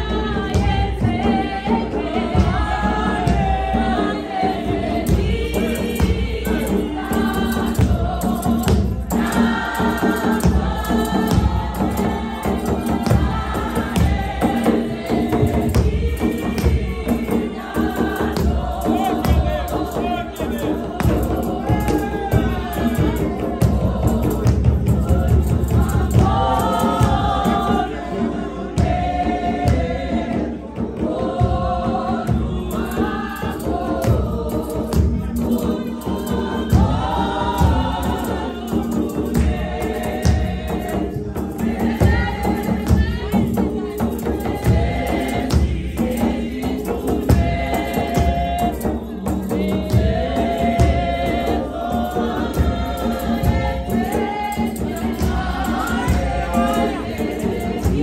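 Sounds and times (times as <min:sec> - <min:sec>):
choir singing a hymn: 0:00.0 - 0:58.0
hand drums: 0:00.0 - 0:58.0
rhythmic percussive beat: 0:00.0 - 0:58.0
tambourine: 0:32.6 - 0:58.0.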